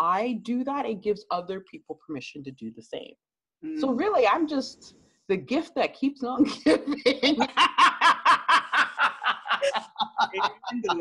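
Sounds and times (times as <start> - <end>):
women laughing: 6.5 - 11.0.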